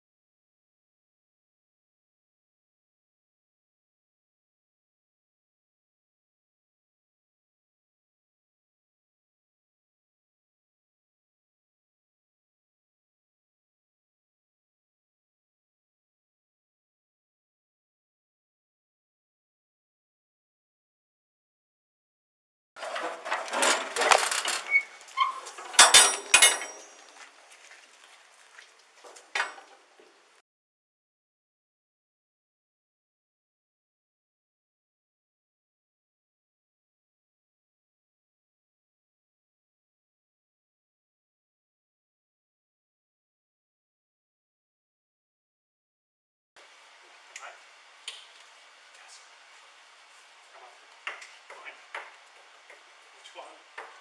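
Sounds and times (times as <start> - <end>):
objects clicking and knocking: 22.8 - 27.2
metal door hardware clanking: 22.9 - 27.0.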